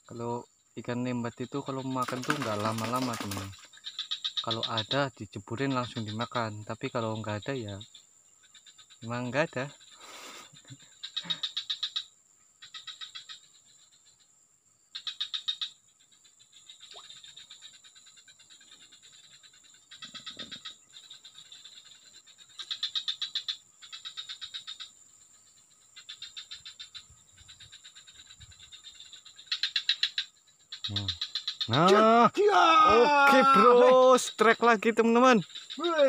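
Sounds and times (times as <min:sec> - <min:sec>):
frog rattling calls: 0:00.0 - 0:36.0.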